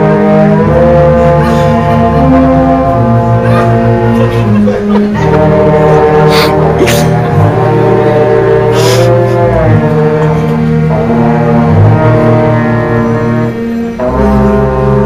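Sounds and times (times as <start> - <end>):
concert band playing a march: 0.0 - 15.0.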